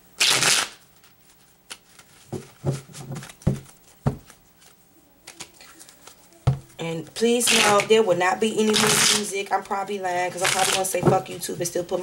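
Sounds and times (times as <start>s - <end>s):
cards shuffling: 0.2s - 6.8s, 8.6s - 11.4s
cards tapping: 1.7s - 6.8s.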